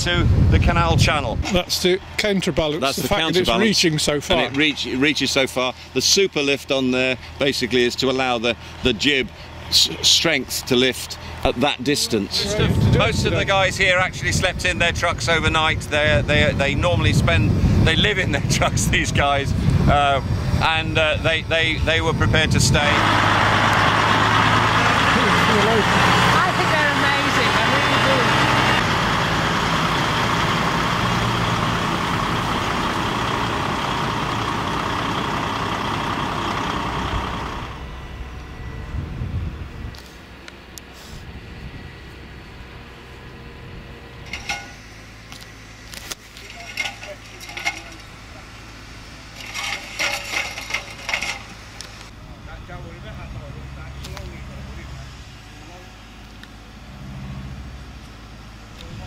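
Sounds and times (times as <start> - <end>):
distant voices: 0.0 - 39.0, 39.6 - 59.0
truck diesel engine running: 0.0 - 59.0
low hum: 33.9 - 58.2.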